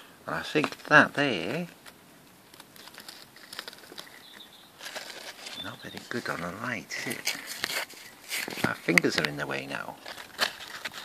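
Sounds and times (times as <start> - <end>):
leaves rustling: 0.3 - 11.0.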